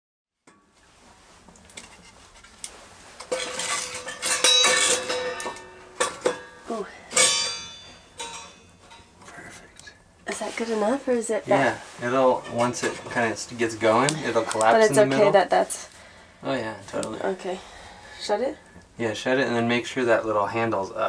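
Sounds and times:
metal clinking and clanking: 3.2s - 9.1s.

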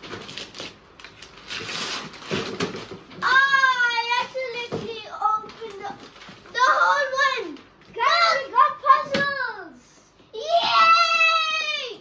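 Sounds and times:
wrapping paper rustling and tearing: 0.0s - 7.8s
child's high-pitched excited cry: 3.2s - 5.8s, 6.5s - 12.0s.

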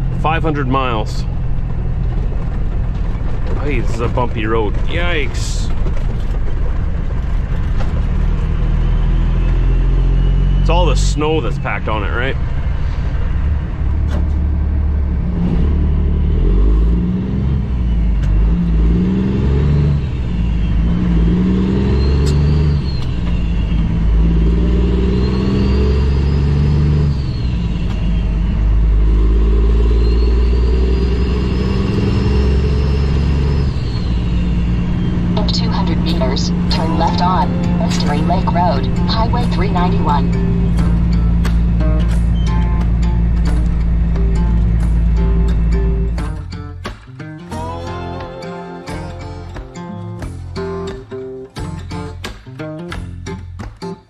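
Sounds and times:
diesel truck engine under load: 0.0s - 47.3s
music: 35.4s - 54.0s.

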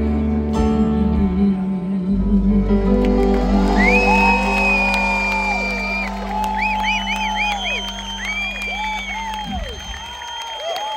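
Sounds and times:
crowd cheering and whooping: 3.1s - 10.9s
crowd whistling: 3.5s - 10.9s.

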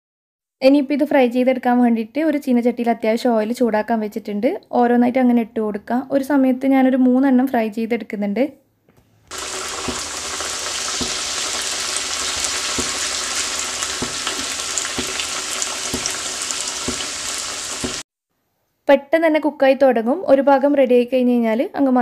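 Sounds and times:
food sizzling in hot oil: 9.3s - 18.1s.

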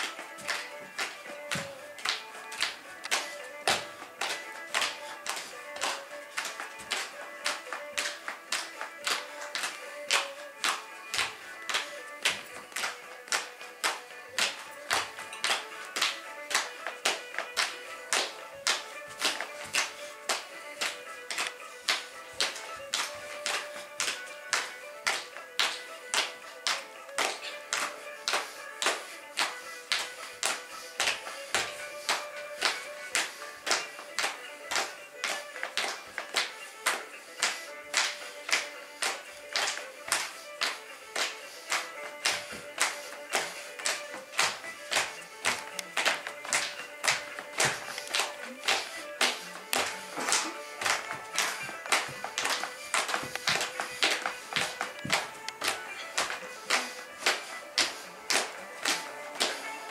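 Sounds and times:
dance shoes tapping on floor: 0.0s - 59.9s
instrumental music: 0.0s - 59.9s.

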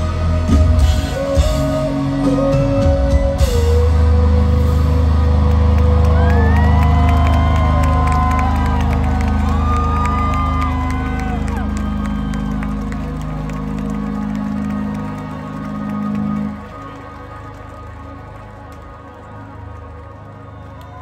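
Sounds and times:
low synth and bass drone: 0.0s - 21.0s
crowd cheering and whooping: 3.6s - 21.0s.

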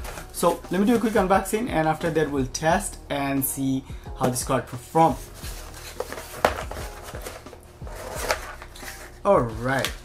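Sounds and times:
cardboard package rustling: 0.0s - 1.2s, 5.2s - 10.0s.

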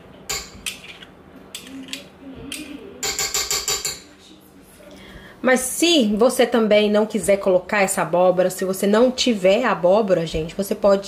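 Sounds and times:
spatula scraping metal spoon: 0.6s - 2.1s.

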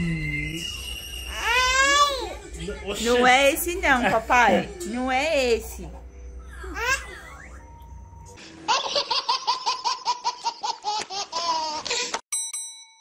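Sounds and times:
baby laughing and squealing: 1.3s - 2.4s, 6.5s - 7.4s.

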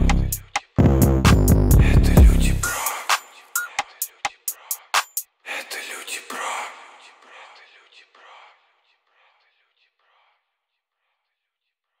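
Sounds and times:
whispered voice echoing: 5.4s - 10.4s.

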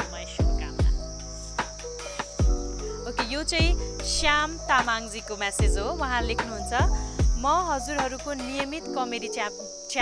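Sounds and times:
hip-hop beat background music: 0.0s - 5.0s, 5.6s - 9.2s.

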